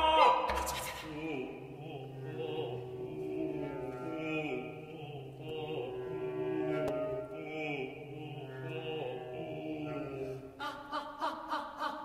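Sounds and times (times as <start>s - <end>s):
vocal ensemble chant-like tones: 0.0s - 12.0s.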